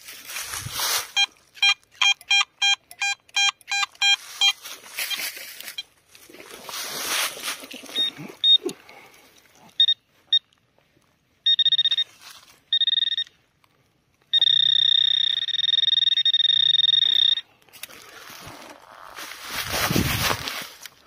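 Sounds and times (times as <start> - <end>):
metal detector beeping: 1.0 - 6.0, 7.9 - 8.7, 9.7 - 10.5, 11.4 - 13.4, 14.3 - 17.5.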